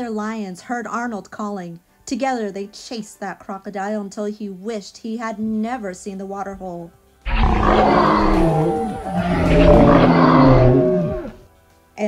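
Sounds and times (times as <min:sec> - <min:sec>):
lion roaring: 0:07.3 - 0:11.4.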